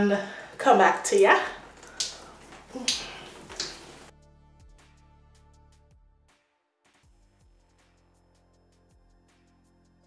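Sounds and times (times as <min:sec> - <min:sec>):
wet hair squelching: 0:01.1 - 0:04.1.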